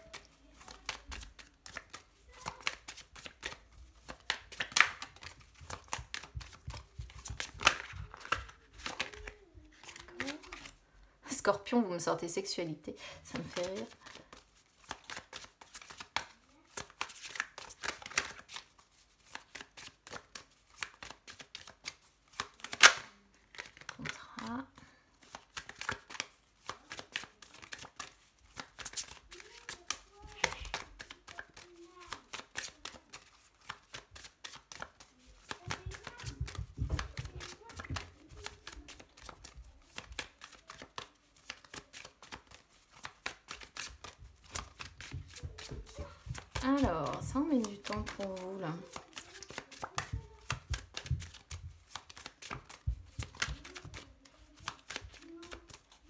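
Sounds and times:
cards being shuffled: 0.0s - 10.8s, 13.3s - 56.0s
sharp card snap: 22.6s - 23.7s.

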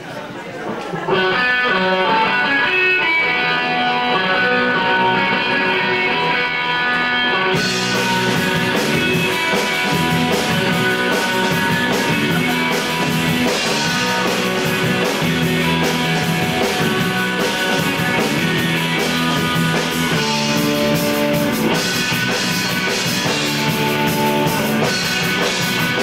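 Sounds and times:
electric guitar intro: 1.1s - 26.0s
drums and cymbals: 2.2s - 26.0s.

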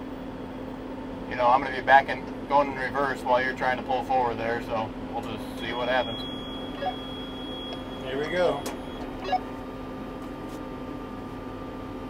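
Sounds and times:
tractor diesel engine running: 0.0s - 12.0s
faint high-pitched tone: 5.2s - 9.5s.

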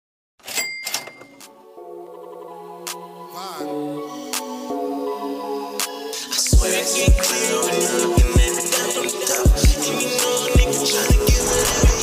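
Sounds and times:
bell-like ding: 0.5s - 1.4s.

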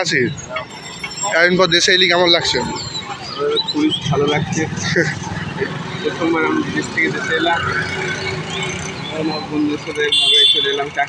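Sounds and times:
road traffic rumble: 0.0s - 11.0s
voices talking: 0.0s - 11.0s.

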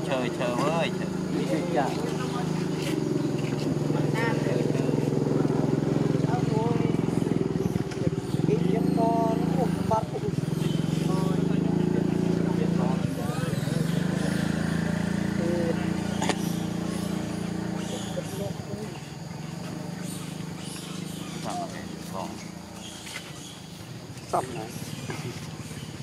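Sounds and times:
motor engine running: 0.0s - 26.0s.

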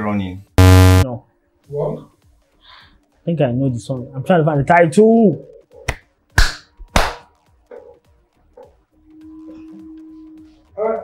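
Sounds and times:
hand snap: 5.9s - 7.3s.

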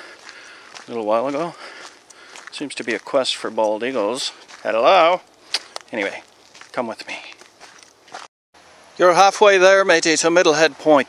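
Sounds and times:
footsteps on dirt trail: 0.0s - 8.3s.

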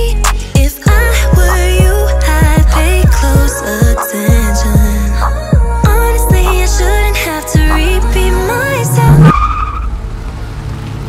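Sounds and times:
song: 0.0s - 9.4s
low car engine: 4.4s - 11.0s
road noise: 6.4s - 11.0s
car tyres squealing: 8.8s - 10.7s.

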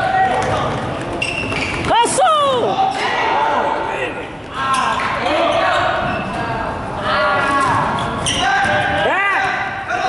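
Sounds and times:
sneakers squeaking on court: 0.4s - 2.2s.

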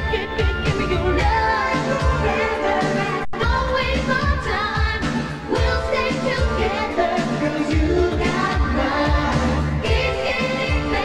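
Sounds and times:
band with bass line: 0.0s - 11.0s
woman singing pop ballad: 0.0s - 11.0s.

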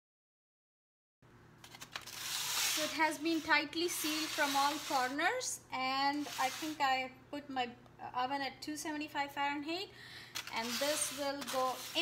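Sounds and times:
aluminum foil crinkling: 1.6s - 5.2s, 10.3s - 12.0s
woman speaking: 2.8s - 9.9s, 10.5s - 12.0s.

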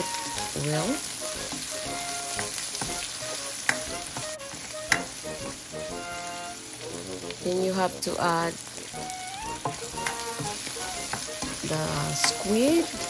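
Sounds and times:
spatula stirring: 0.0s - 13.0s
vegetables sizzling in oil: 0.0s - 13.0s.

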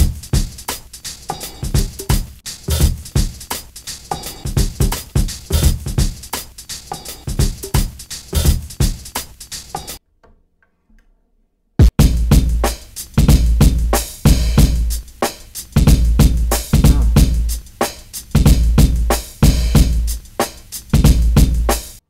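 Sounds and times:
boom bap drum loop: 0.0s - 10.0s, 11.8s - 22.0s.

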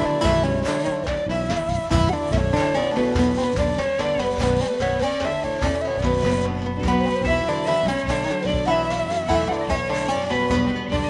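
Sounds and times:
plucked long-necked lute: 0.0s - 11.0s
wooden flute melody: 0.0s - 11.0s.

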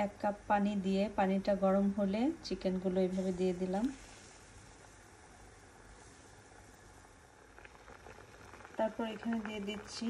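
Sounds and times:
water coming to a boil: 2.4s - 10.0s.

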